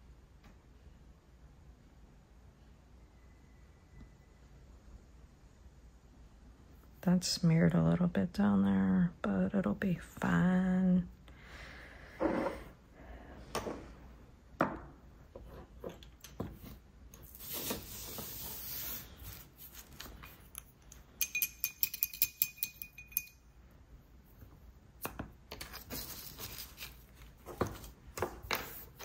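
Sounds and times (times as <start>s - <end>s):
small tools tapping and clinking: 20.5s - 23.4s.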